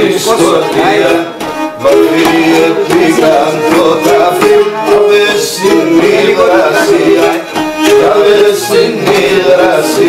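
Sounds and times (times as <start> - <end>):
bowed lyra playing folk tune: 0.4 - 9.9.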